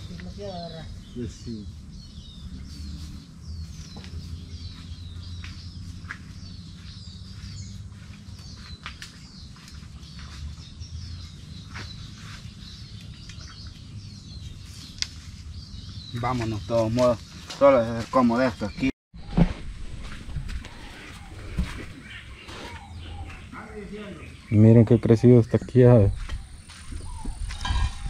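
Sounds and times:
small birds chirping: 0.0s - 18.9s, 20.2s - 28.0s.

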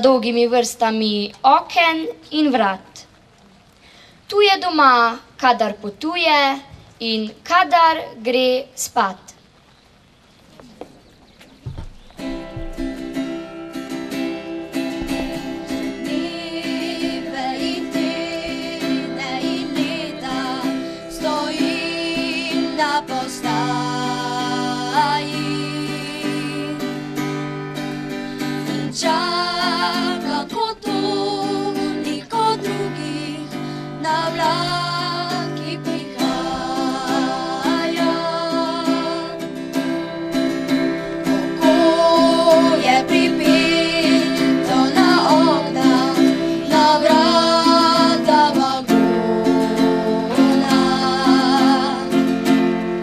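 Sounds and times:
strummed acoustic guitar: 12.2s - 53.0s
children singing: 14.2s - 27.2s, 28.6s - 52.7s.

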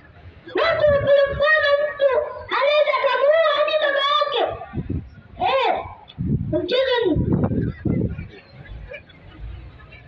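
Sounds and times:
boy calling over loudspeaker: 0.5s - 7.6s.

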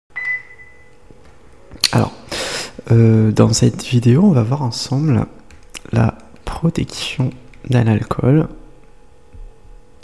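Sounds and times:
high-pitched electronic beep: 0.2s - 1.0s.

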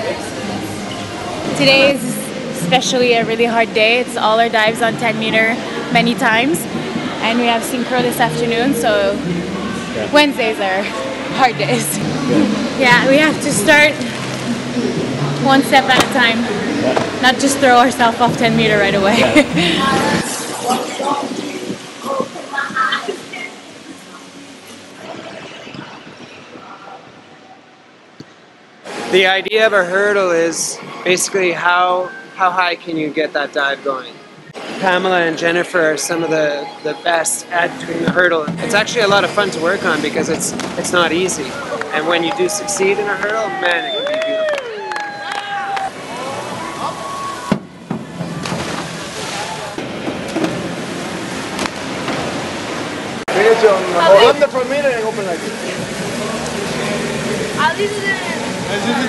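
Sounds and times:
water rushing and splashing: 0.0s - 27.1s, 28.8s - 59.0s
reverberant background hiss: 0.0s - 42.9s
faint indistinct voices: 0.0s - 43.9s, 53.3s - 59.0s.

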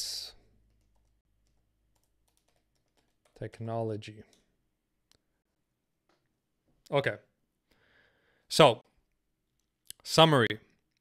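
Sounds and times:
keyboard clicks: 0.7s - 3.4s.

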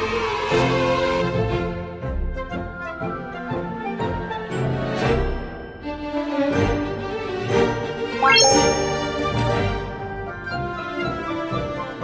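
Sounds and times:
background music: 8.1s - 9.7s
rising chime run with ding: 8.2s - 9.7s.

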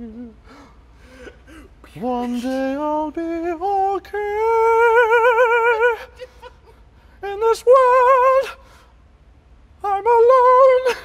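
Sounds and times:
faint breath: 0.4s - 1.7s, 8.6s - 9.0s.

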